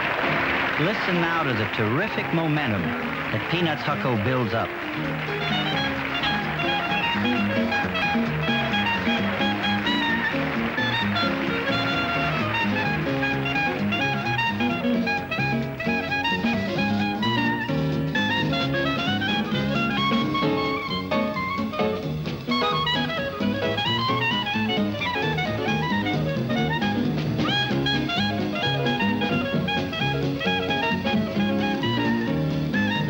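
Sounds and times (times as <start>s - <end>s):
swing band rhythm: 0.0s - 33.0s
clarinet soloing: 4.5s - 33.0s.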